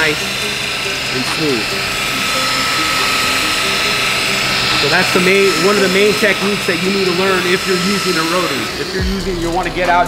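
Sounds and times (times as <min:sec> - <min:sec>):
rotary polisher whining: 0:00.0 - 0:10.0.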